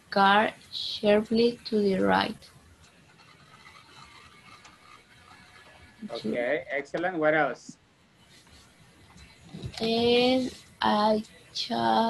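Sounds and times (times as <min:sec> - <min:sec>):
faint background hiss: 0:06.0 - 0:12.0.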